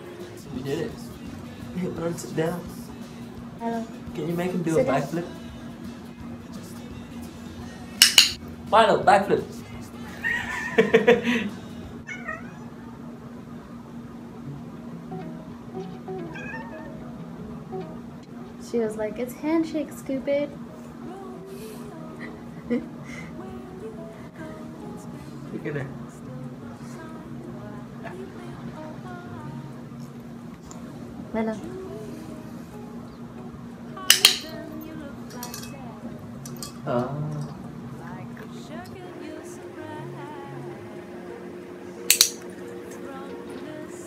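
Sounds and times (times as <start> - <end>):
background music: 0.0 - 12.1, 14.2 - 44.0
cat meowing: 12.0 - 12.9, 15.9 - 17.2.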